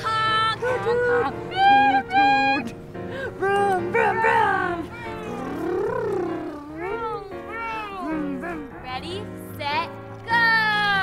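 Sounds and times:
background music with held notes: 0:00.0 - 0:11.0
person making sliding calls: 0:05.1 - 0:06.8.

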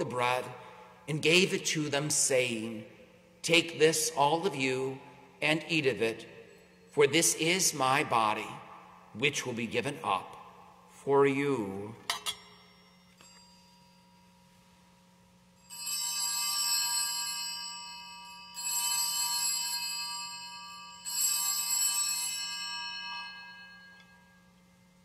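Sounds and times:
altar bells ringing: 0:06.2 - 0:08.0, 0:12.2 - 0:14.8, 0:15.6 - 0:25.0.

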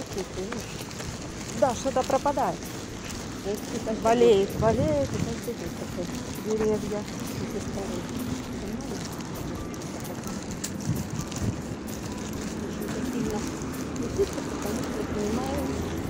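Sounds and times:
faint indistinct voices: 0:00.0 - 0:16.0
traffic hum: 0:00.0 - 0:16.0
wind on microphone: 0:04.4 - 0:05.7, 0:10.3 - 0:12.2.

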